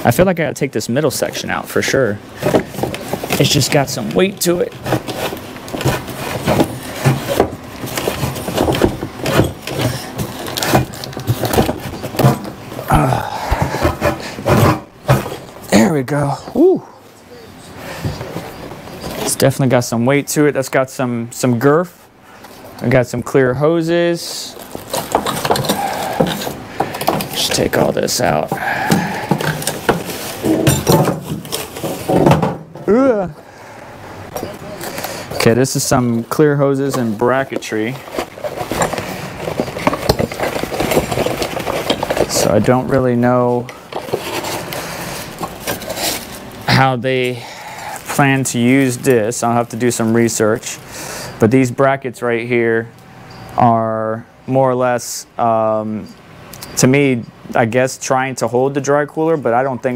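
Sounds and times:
cardboard and foam packaging rubbing: 0:02.4 - 0:15.6, 0:24.5 - 0:32.3, 0:34.8 - 0:46.9.

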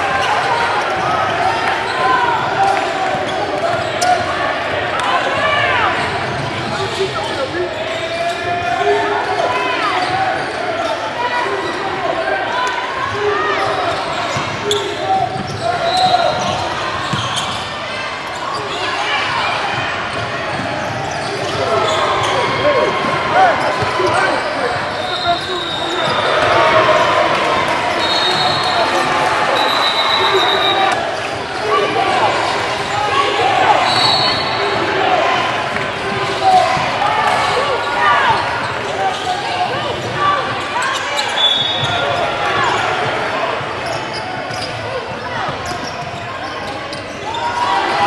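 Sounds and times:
sneakers squeaking: 0:00.0 - 0:04.4, 0:05.0 - 0:12.0, 0:13.1 - 0:48.0
crowd talking and shouting: 0:00.0 - 0:48.0.

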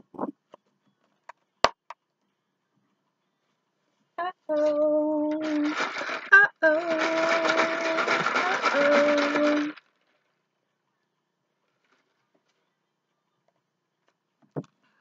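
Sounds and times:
woman humming: 0:04.2 - 0:05.7, 0:06.3 - 0:09.8
cards rustling: 0:05.3 - 0:09.8.

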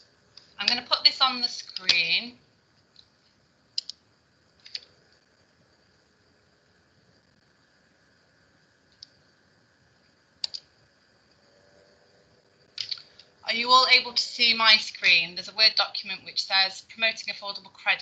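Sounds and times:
computer mouse clicking: 0:01.6 - 0:02.0, 0:03.8 - 0:04.0, 0:04.6 - 0:04.9, 0:10.4 - 0:10.7, 0:12.8 - 0:13.3.

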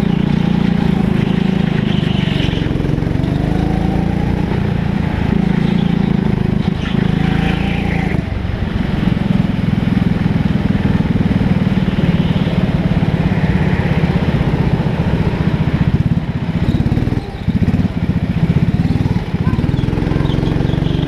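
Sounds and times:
go-kart engine buzzing: 0:00.0 - 0:21.0.

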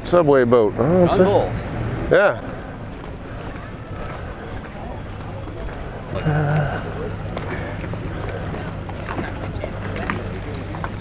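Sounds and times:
faint voices: 0:00.0 - 0:11.0
outboard engines idling: 0:02.1 - 0:11.0.

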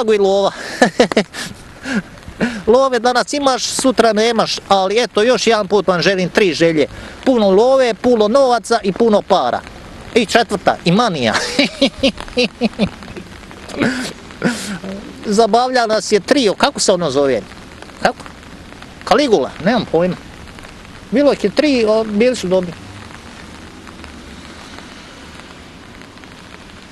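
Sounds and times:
man talking: 0:00.0 - 0:01.2, 0:01.9 - 0:11.9, 0:12.7 - 0:18.3, 0:19.0 - 0:20.2, 0:21.1 - 0:22.8
rain on umbrella: 0:00.0 - 0:26.9.

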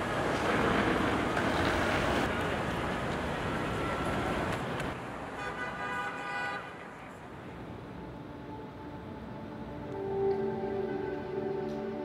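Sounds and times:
city traffic noise: 0:00.0 - 0:12.0
car horn: 0:05.3 - 0:06.8.

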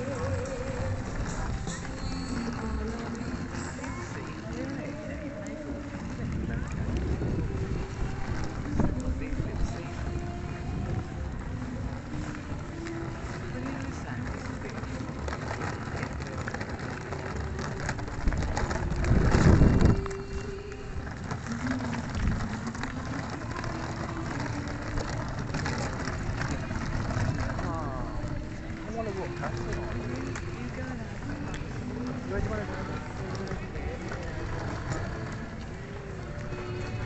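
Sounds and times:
wind rumble on microphone: 0:00.0 - 0:37.0
microphone handling noise: 0:05.8 - 0:28.7.

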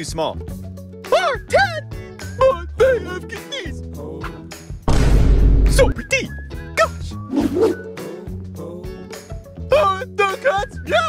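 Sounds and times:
music with low beat: 0:04.2 - 0:06.6.

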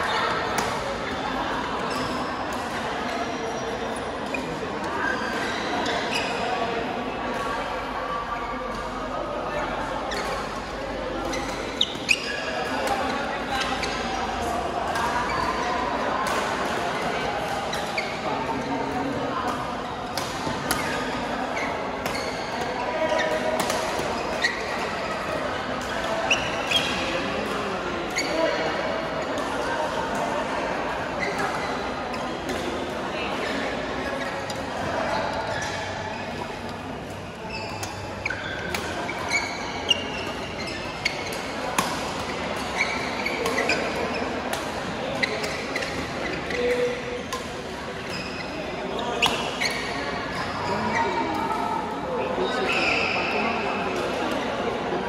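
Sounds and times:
babble of echoing voices: 0:00.0 - 0:55.0
shoes squeaking on floor: 0:05.0 - 0:06.5, 0:11.3 - 0:12.7, 0:20.7 - 0:25.3, 0:26.1 - 0:27.2, 0:28.2 - 0:28.6, 0:33.2 - 0:36.6, 0:37.2 - 0:47.3, 0:48.0 - 0:51.3, 0:52.4 - 0:53.6.

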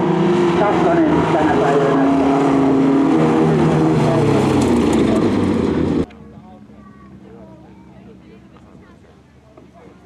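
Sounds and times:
race car engines revving: 0:00.0 - 0:09.6.

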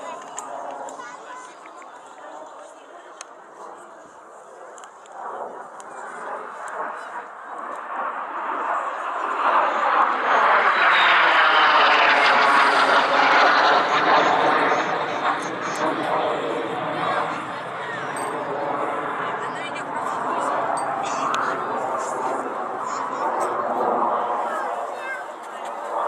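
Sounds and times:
jet engine passing: 0:03.5 - 0:26.0.

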